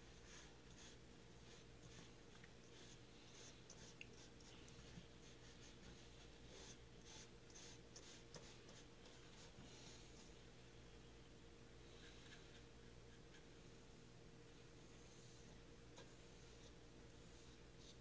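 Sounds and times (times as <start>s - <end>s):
brush swishing on paper: 0.0s - 10.4s, 14.9s - 18.0s
low steady hum: 0.0s - 18.0s.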